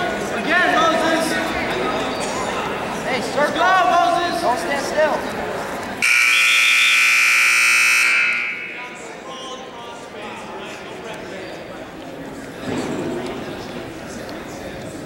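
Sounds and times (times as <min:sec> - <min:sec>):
scoreboard buzzer: 0:06.0 - 0:09.0.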